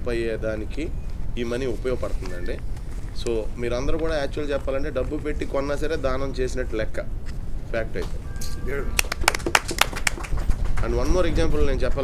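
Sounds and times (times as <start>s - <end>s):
people clapping: 8.9s - 12.0s.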